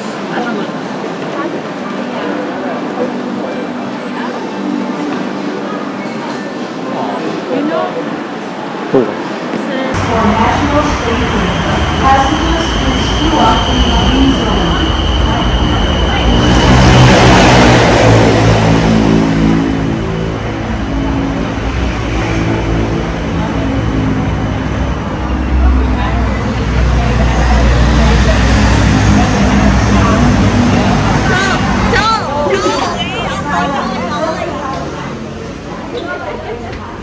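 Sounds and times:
train rushing past: 0:00.0 - 0:37.0
train braking: 0:10.0 - 0:35.0.

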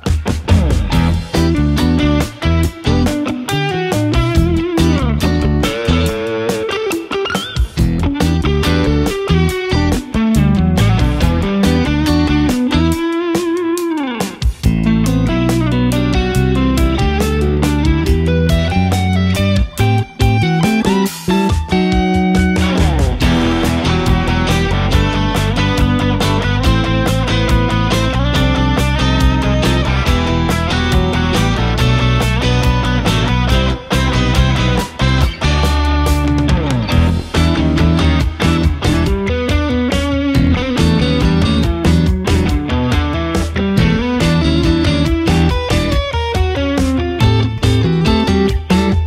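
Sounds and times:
electric guitar rock playing: 0:00.0 - 0:49.0.

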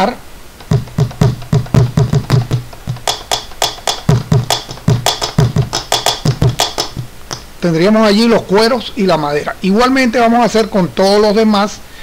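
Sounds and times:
deep drum head hits: 0:00.6 - 0:07.5
sharp strikes on drum wood: 0:00.6 - 0:07.5.

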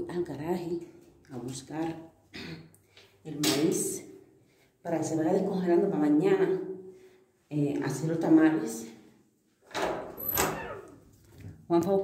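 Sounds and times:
door opening rush: 0:09.8 - 0:11.0.

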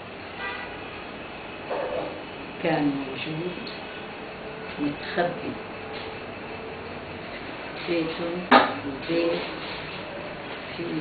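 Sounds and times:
steady background noise: 0:00.0 - 0:11.0.

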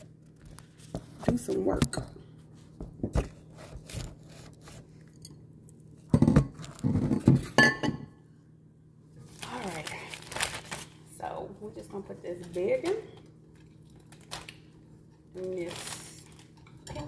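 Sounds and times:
kitchenware knocks and clinks: 0:06.1 - 0:08.1
plastic bag crinkling: 0:09.2 - 0:11.5, 0:13.8 - 0:14.7, 0:15.4 - 0:16.6.

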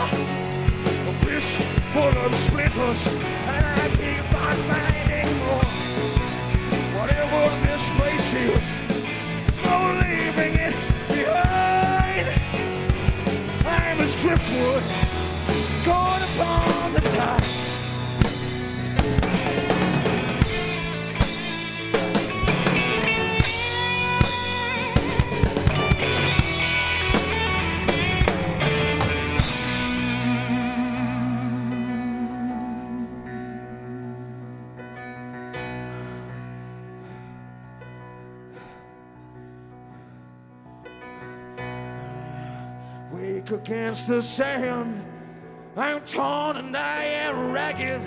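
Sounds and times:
electric guitar bending notes: 0:00.0 - 0:37.2
blues band playing: 0:00.0 - 0:38.7, 0:40.8 - 0:48.0.

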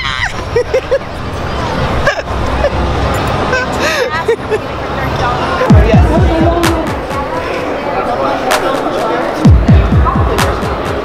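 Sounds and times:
din of many voices: 0:00.0 - 0:11.0.

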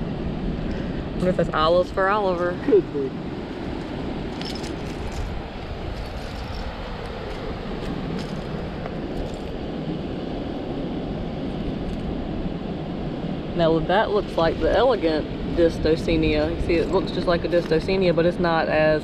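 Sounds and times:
ocean surf: 0:00.0 - 0:19.0
wind on microphone: 0:00.0 - 0:19.0.

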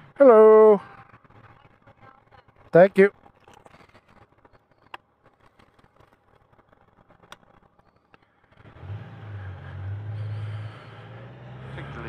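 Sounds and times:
motorcycle engine humming: 0:00.0 - 0:12.0.

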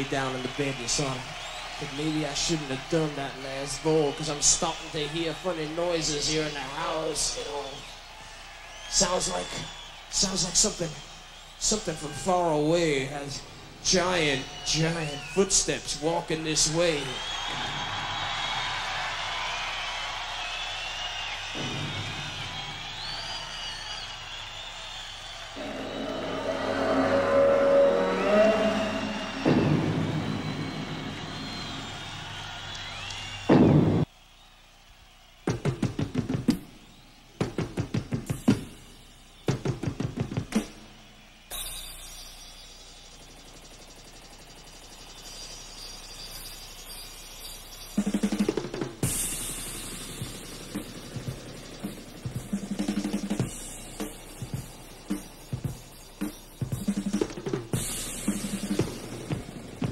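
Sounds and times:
gliding guitar tones: 0:25.6 - 0:32.1
heavy rapid drum strikes: 0:28.8 - 0:31.9, 0:35.5 - 0:36.6, 0:37.4 - 0:38.9, 0:48.0 - 0:59.9
loud cymbal crash: 0:41.5 - 0:43.6, 0:49.0 - 0:52.4.

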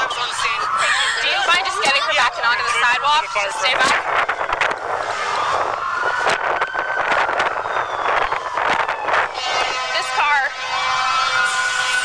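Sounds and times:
siren wailing: 0:00.0 - 0:12.0
street noise: 0:00.0 - 0:12.0.

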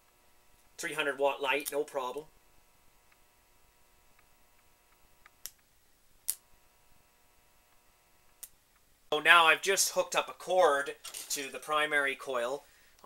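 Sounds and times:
transformer electrical hum: 0:00.0 - 0:13.0
sharp clicks of wire connections: 0:04.1 - 0:06.5.

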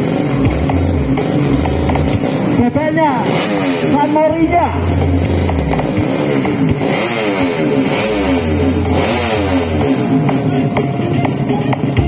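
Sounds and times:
motorcycles revving: 0:00.0 - 0:12.0.

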